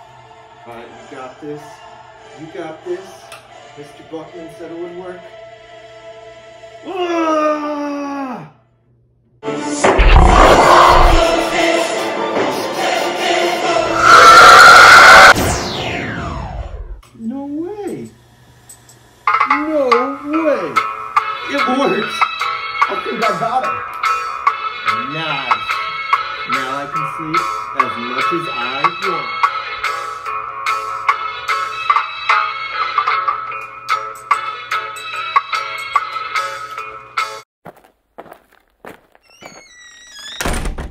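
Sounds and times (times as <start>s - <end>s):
harsh sound effect: 9.8s - 11.8s, 13.6s - 17.0s
high squeaky gliding tones: 13.8s - 15.4s
falling whistle-like glide: 13.8s - 17.0s.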